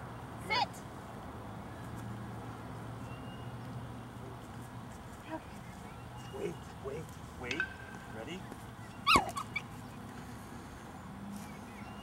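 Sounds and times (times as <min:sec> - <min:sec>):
small dog yelping: 0:09.0 - 0:09.7.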